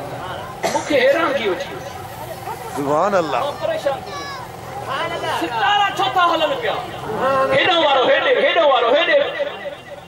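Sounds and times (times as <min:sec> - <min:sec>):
man preaching into a microphone: 0:07.4 - 0:09.8.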